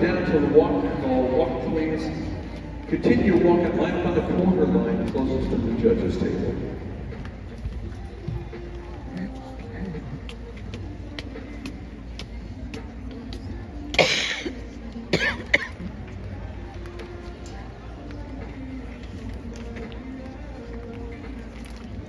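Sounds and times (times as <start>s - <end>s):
murmur of background voices: 0.0s - 22.0s
person coughing: 14.0s - 15.9s.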